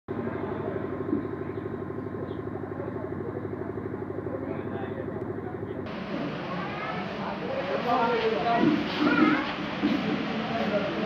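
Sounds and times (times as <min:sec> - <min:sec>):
engine humming with fast pulse: 0:00.1 - 0:07.8.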